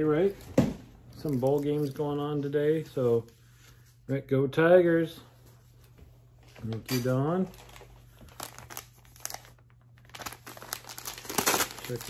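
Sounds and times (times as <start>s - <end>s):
wrapping paper crinkling: 1.1s - 2.6s, 6.4s - 12.0s.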